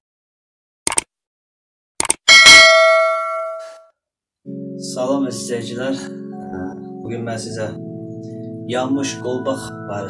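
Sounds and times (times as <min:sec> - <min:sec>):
short clicks: 0:00.9 - 0:01.1, 0:02.0 - 0:02.2
bright bell ding: 0:02.3 - 0:03.8.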